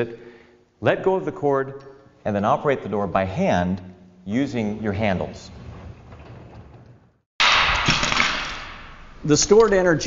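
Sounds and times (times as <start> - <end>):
loud crash: 7.4 - 9.0.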